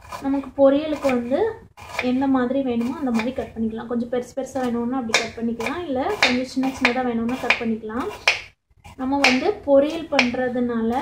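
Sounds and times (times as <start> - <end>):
person talking: 0.2 - 8.3, 9.0 - 11.0
knife tapping on cutting board: 5.1 - 7.6, 8.2 - 8.5, 9.2 - 9.4, 10.2 - 10.4.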